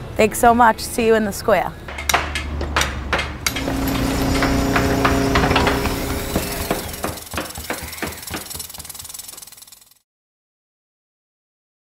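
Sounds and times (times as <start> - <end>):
hammer-like knocks: 1.9 - 8.9
steady hum: 3.4 - 9.3.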